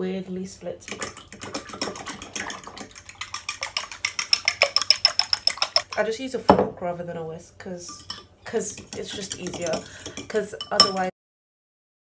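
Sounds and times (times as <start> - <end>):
fork beating eggs in a bowl: 0.8 - 6.2, 7.9 - 11.1.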